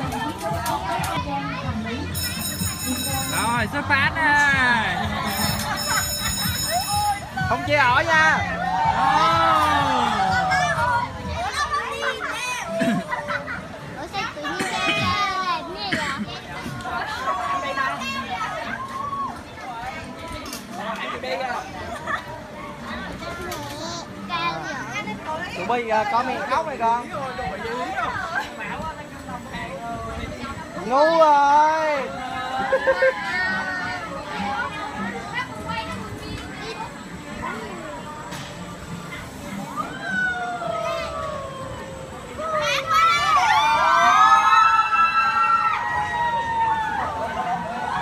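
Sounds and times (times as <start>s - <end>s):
people chattering and calling out: 0.0s - 48.0s.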